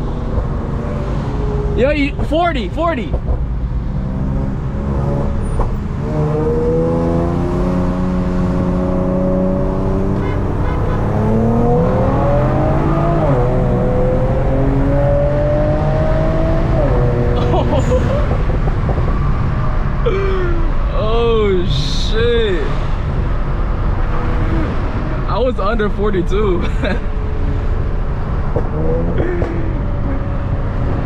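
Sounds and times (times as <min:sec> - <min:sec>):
car engine accelerating hard: 0:03.7 - 0:20.1, 0:26.8 - 0:31.0.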